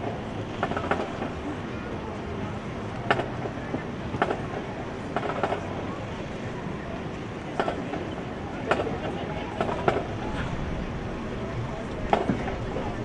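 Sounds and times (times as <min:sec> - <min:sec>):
crowd noise: 0:00.0 - 0:13.0
drumline tapping: 0:07.5 - 0:10.5.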